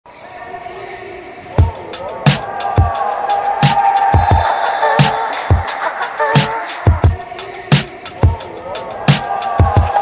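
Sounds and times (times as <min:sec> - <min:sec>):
intro music: 0:01.6 - 0:10.0.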